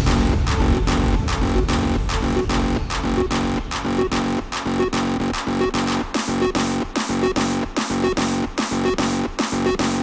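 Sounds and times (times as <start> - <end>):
hardstyle dance track: 0.0 - 10.0
heavy kick drum: 0.0 - 10.0
repeating electronic synth figure: 3.1 - 10.0.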